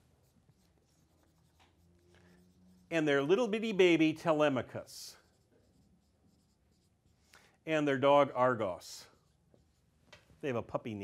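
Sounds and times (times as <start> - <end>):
marker writing on whiteboard: 0.0 - 7.6, 8.6 - 10.4.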